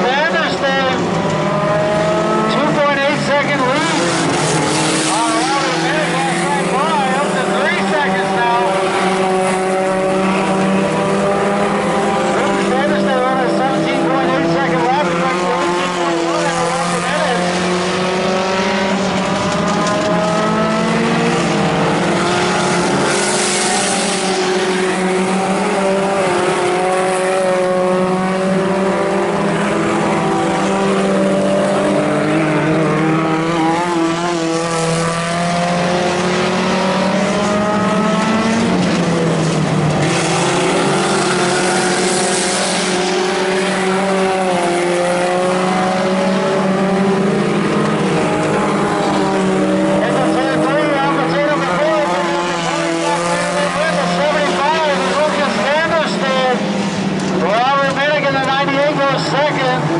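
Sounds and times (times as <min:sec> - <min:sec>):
race car engines running: 0:00.0 - 0:59.9.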